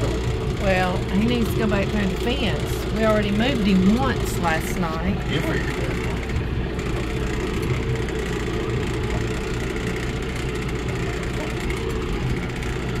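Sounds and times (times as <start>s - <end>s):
utility vehicle engine running: 0.0s - 13.0s.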